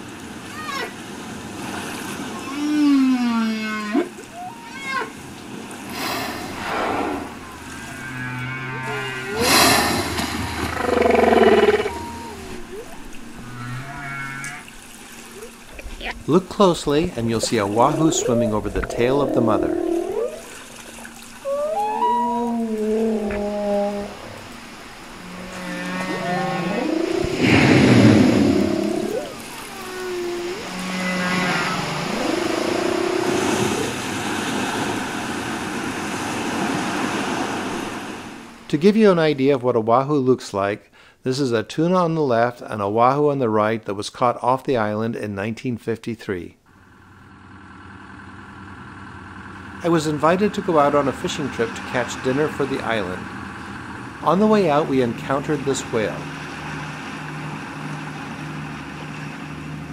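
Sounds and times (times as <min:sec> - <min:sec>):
low steady hums: 0:00.0 - 0:36.0, 0:46.5 - 0:59.9
whale calls: 0:02.2 - 0:38.5, 0:49.8 - 0:59.9
rasping burst: 0:05.9 - 0:08.0, 0:24.2 - 0:29.7.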